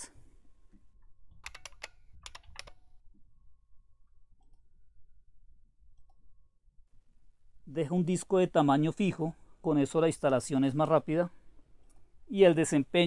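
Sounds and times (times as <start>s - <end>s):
faint keyboard typing: 1.3s - 3.0s.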